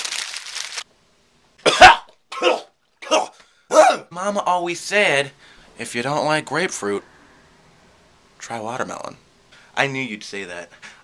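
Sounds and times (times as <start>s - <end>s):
man coughing: 1.6s - 4.1s.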